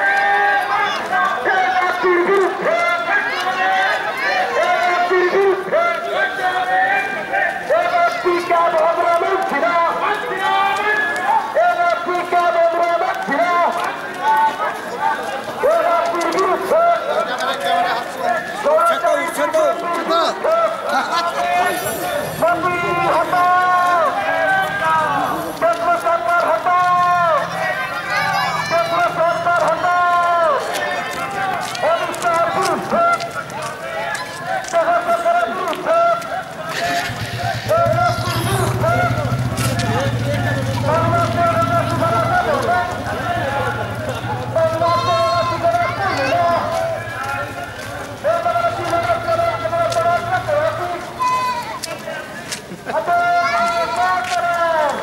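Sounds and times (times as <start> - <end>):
crowd chanting slogans: 0.0 - 55.0.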